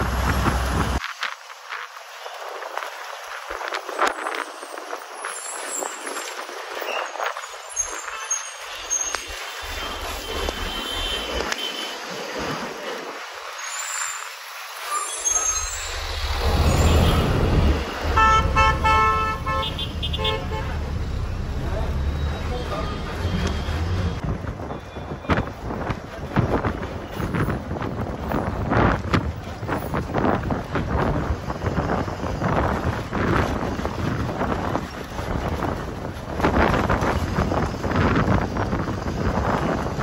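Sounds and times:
bus engine rumble: 0.0 - 40.0
horn short toots: 16.4 - 20.8
wind buffeting microphone: 23.2 - 40.0.

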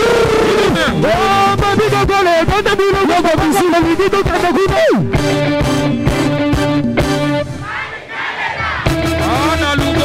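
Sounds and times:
live band music: 0.0 - 10.0
audience cheering and shouting: 7.6 - 9.4.

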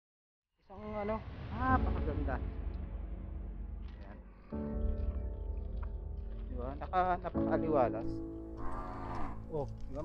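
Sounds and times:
background music: 0.6 - 10.0
cow mooing: 8.6 - 9.4.

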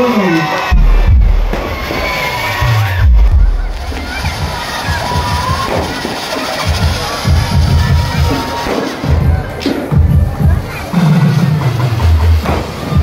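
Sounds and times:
crowd noise: 0.0 - 13.0
firework shells bursting with booms: 0.7 - 10.0.

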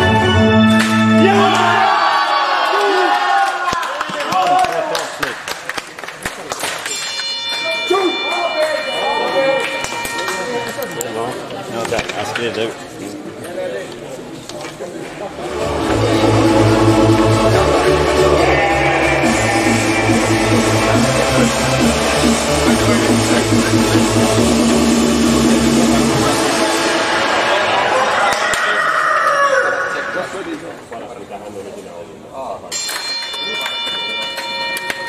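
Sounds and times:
voices in a hall: 0.0 - 35.0
loud music with heavy bass: 15.4 - 28.2.

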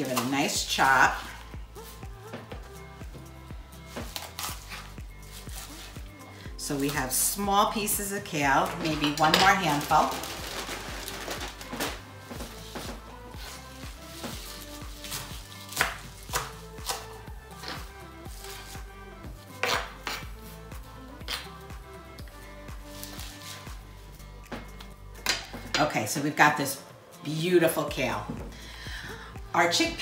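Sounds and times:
background music: 0.0 - 30.0
knife chopping on cutting board: 15.1 - 17.9, 19.6 - 20.3.

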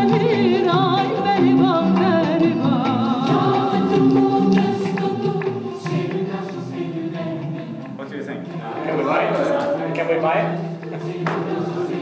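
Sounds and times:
voices singing held notes: 0.0 - 12.0.

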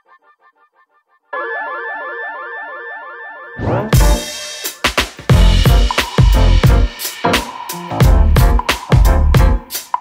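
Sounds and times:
electronic synth music: 1.3 - 10.0.

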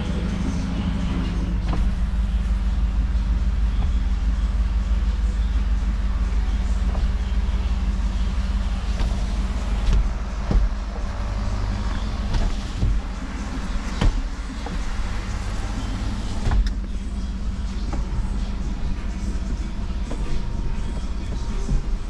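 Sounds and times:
low mechanical hum: 0.0 - 22.0.

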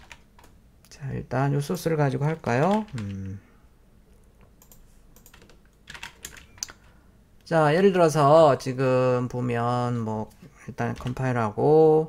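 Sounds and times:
computer keyboard key clicks: 4.6 - 6.8.

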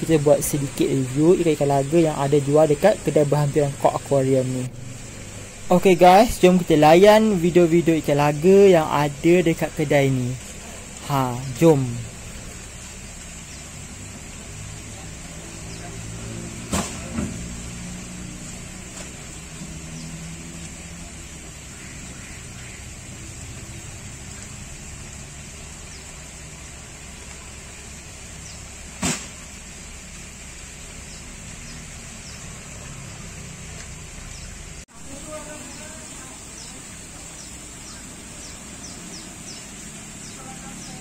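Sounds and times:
constant hiss: 0.0 - 41.0.

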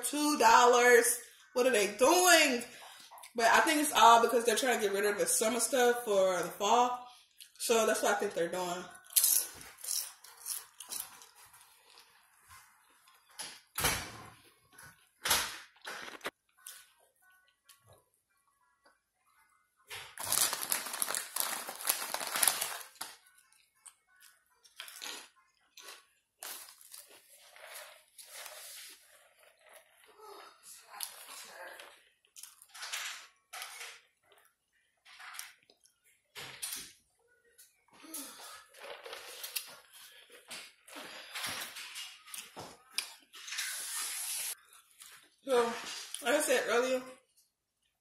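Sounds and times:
food wrapper crinkling: 19.9 - 29.2.

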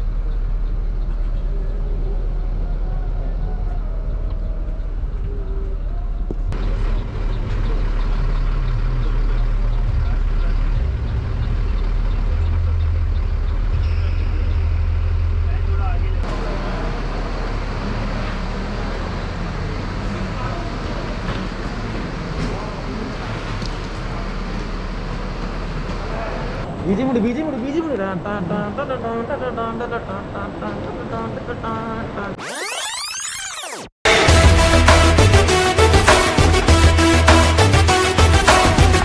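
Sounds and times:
distant traffic: 0.0 - 32.3
bus engine rumbling: 0.0 - 32.4
indistinct voices: 1.2 - 6.6, 25.9 - 39.0.

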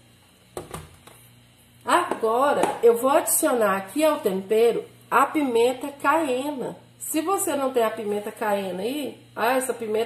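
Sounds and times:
plastic bowl knocking on countertop: 0.6 - 1.0, 2.1 - 2.8.

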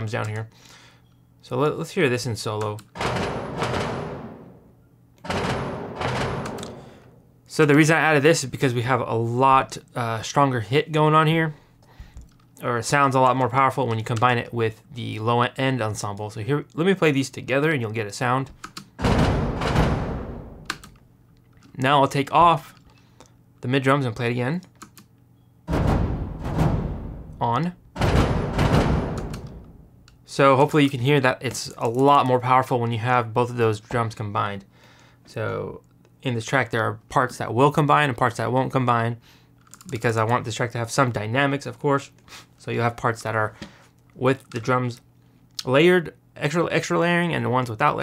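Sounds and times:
big drum hits ringing out: 3.0 - 4.7, 5.3 - 7.2, 25.7 - 29.9
low orchestral drum hit: 25.7 - 27.4.

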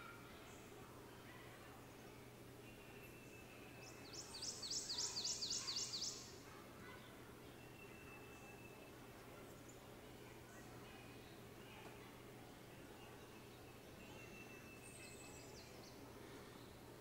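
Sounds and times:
faint bird calls: 2.7 - 9.8.

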